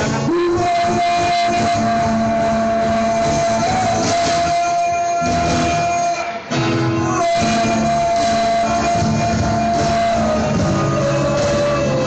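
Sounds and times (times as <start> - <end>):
cajon beat: 0.0 - 12.0
strummed acoustic guitars: 0.0 - 12.0
man singing long high note: 0.2 - 12.0.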